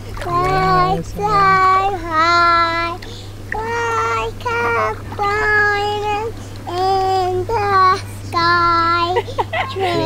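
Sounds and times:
steady low hum: 0.0s - 10.0s
young child singing: 0.2s - 9.3s.

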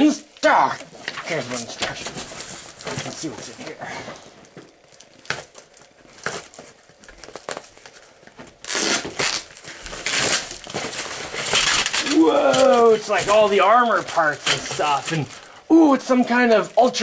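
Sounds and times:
packaging crinkling and tearing: 0.4s - 17.0s.

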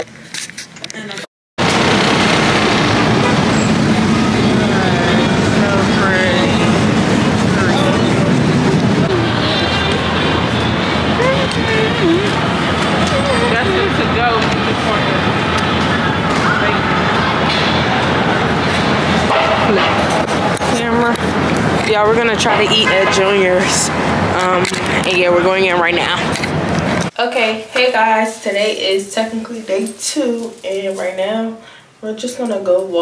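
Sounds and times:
city street noise: 0.0s - 31.9s
traffic rumble: 1.0s - 31.6s
passers-by talking: 4.0s - 27.1s.

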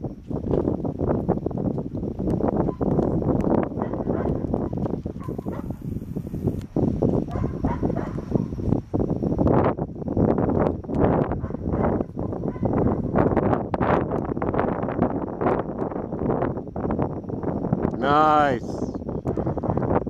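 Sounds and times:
wind buffeting microphone: 0.0s - 20.0s
horse hooves clicking: 0.2s - 8.7s.

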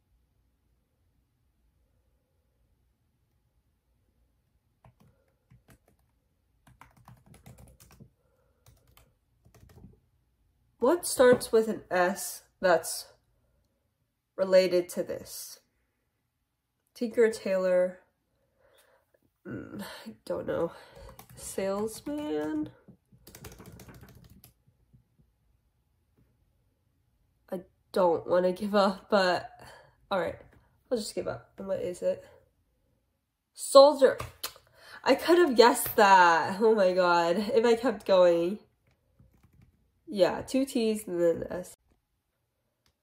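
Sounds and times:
keyboard typing clicks: 4.8s - 9.9s, 21.0s - 24.6s, 38.8s - 39.8s.

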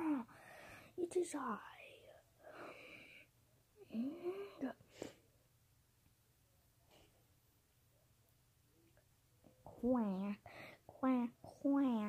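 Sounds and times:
person's breathy wordless voice: 3.8s - 4.9s.

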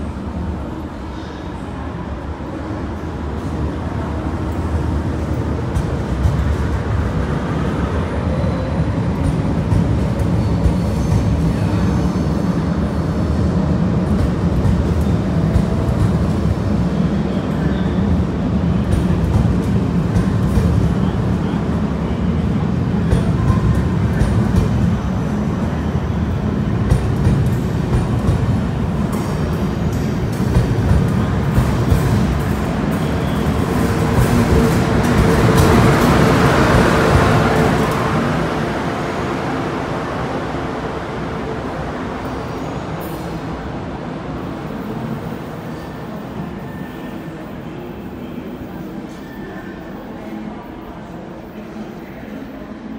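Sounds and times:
train wheels rumbling past: 0.0s - 47.4s.

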